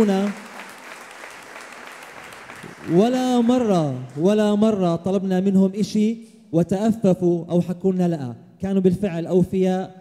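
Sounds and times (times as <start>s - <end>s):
crowd clapping: 0.0s - 4.8s.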